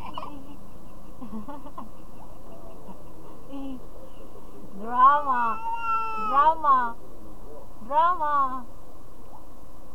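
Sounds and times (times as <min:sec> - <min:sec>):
baby crying: 0:05.3 - 0:06.6.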